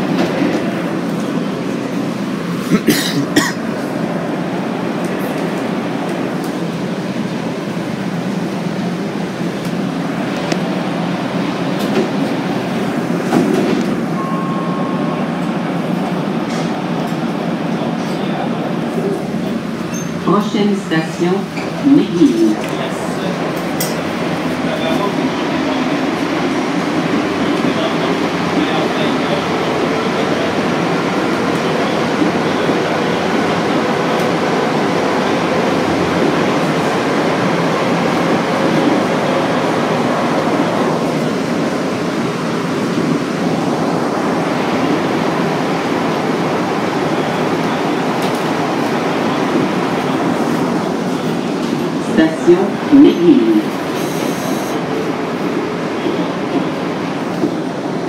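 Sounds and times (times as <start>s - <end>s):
metro car rumbling through tunnel: 0.0s - 58.0s
person speaking: 20.3s - 22.8s, 52.0s - 53.7s.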